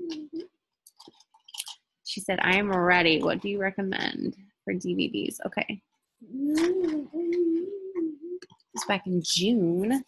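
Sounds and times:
mouth clicks and smacks: 0.0s - 1.9s, 6.4s - 9.0s.

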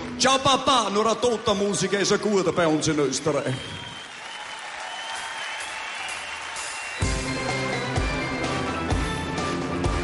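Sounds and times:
audience applauding: 0.0s - 8.8s.

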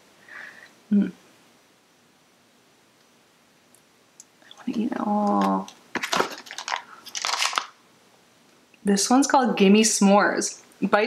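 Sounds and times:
plastic packaging rustling and knocking: 5.2s - 7.8s.

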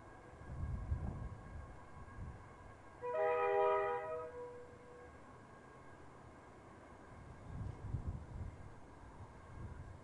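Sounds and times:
locomotive air horn blast: 3.0s - 4.7s.

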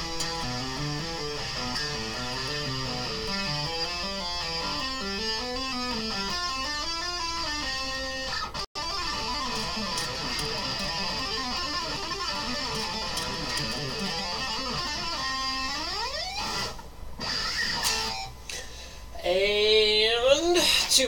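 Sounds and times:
electric guitar tapping: 0.0s - 18.5s.

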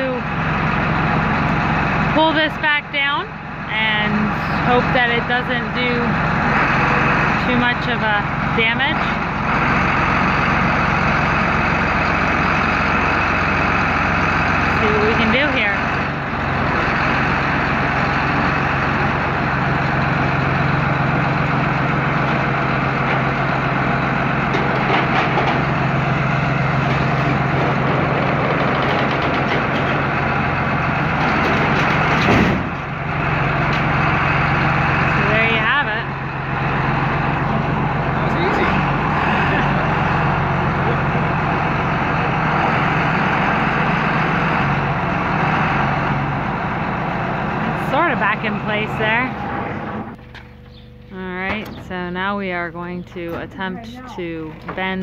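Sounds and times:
tractor diesel engine running: 0.0s - 55.0s
loud bang of door falling: 31.5s - 32.8s.

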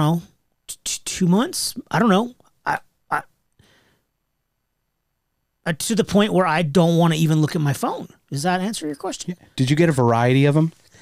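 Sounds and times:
man's nasal vocal sound: 2.6s - 3.3s.

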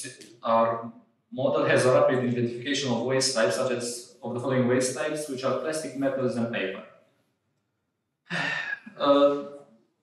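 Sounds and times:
man sighing: 8.3s - 9.0s.

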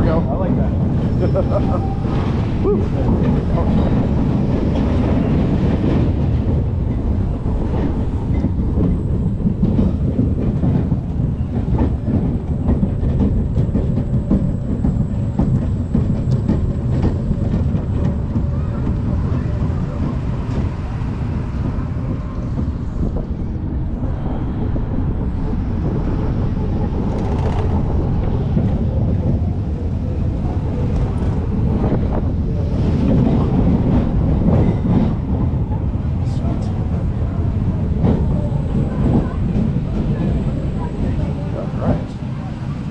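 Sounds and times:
coaster car rumbling on steel track: 0.0s - 42.9s.

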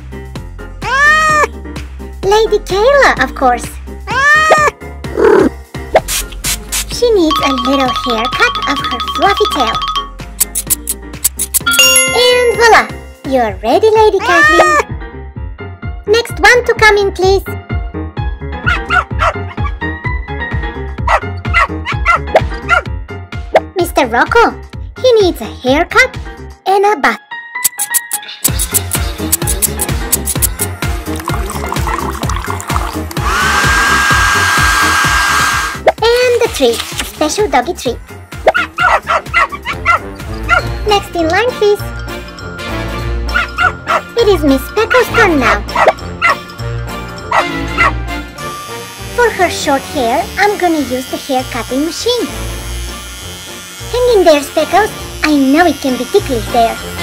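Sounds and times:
background music: 0.0s - 57.0s
background music with beat: 5.8s - 13.2s, 27.6s - 34.3s
small dog barking: 18.6s - 19.6s, 21.1s - 22.9s, 38.4s - 40.6s, 43.3s - 44.1s, 47.3s - 48.0s.

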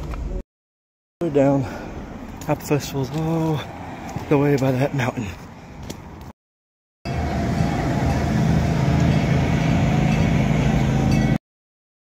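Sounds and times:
low mechanical hum: 7.1s - 11.4s.

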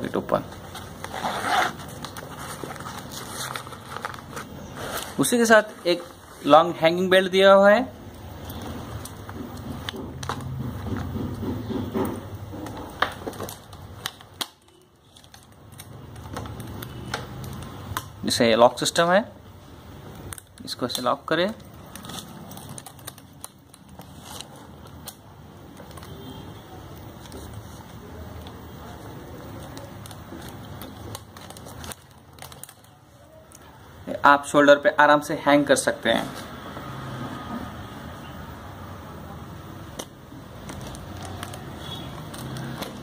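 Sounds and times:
plastic strap rustling and crinkling: 0.3s - 6.6s, 20.2s - 33.7s, 39.9s - 43.0s.

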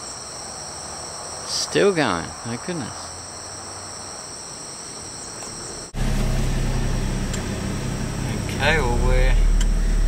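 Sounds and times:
insects chirring: 0.0s - 10.0s
road noise inside cabin: 3.0s - 10.0s
vehicle engine drone: 5.4s - 10.0s.

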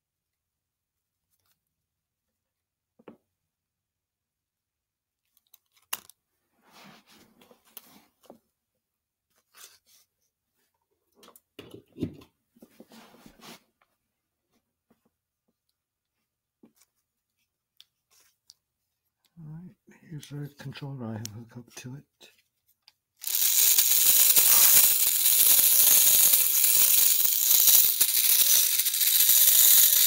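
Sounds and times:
paper rustling and scraping: 9.3s - 10.1s.

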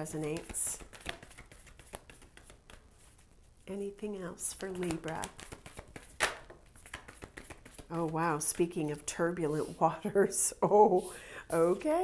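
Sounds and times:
cards shuffling clicks: 0.1s - 2.9s, 4.6s - 8.1s.

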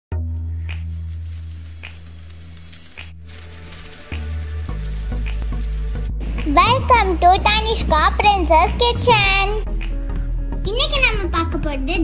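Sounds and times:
sizzling hiss: 0.9s - 7.3s.

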